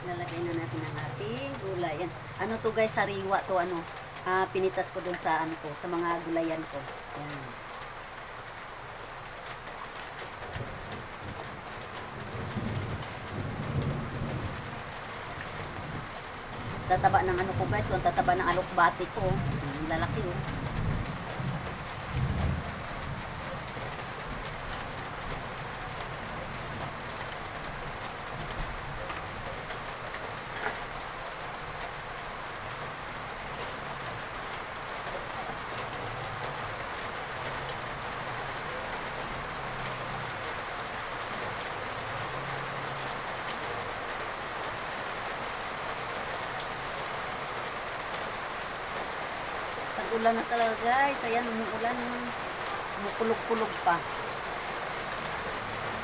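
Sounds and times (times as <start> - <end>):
steady rain: 0.0 - 56.0.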